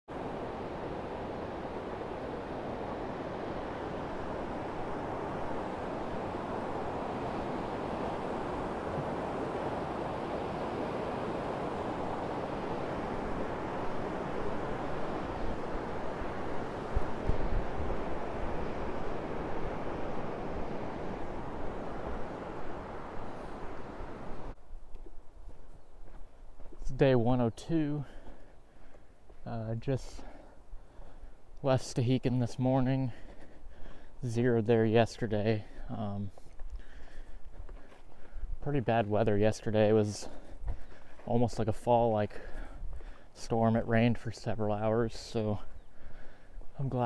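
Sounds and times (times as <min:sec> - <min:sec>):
wind buffeting microphone: 0:00.1 - 0:27.0.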